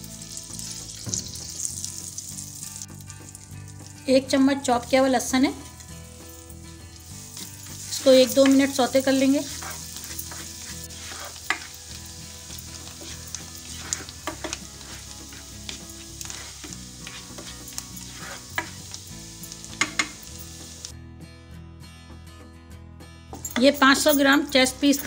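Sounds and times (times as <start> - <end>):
garlic sizzling in butter: 0.0 - 20.9
soft background music: 0.0 - 25.0
spatula scraping and tapping wok: 0.6 - 1.8, 6.9 - 20.9.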